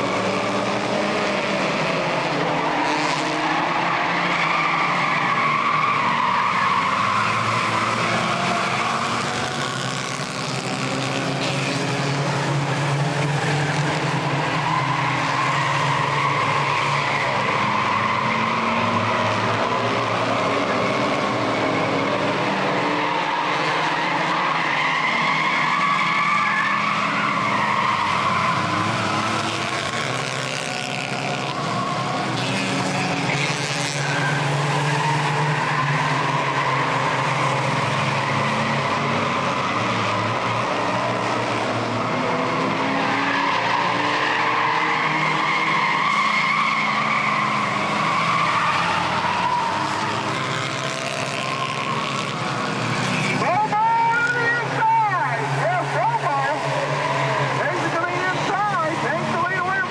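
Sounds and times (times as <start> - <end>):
race car engines: 0.0 - 59.9.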